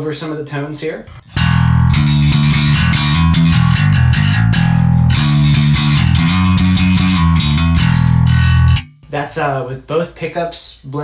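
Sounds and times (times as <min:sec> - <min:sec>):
electric bass plucked notes: 0:01.0 - 0:09.1.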